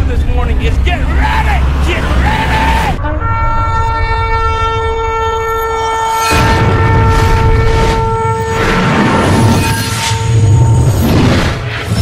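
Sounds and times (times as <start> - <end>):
long horn blast: 2.9 - 11.0.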